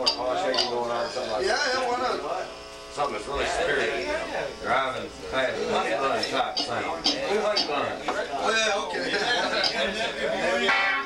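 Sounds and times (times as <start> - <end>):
steady buzzing tone: 10.5 - 11.0.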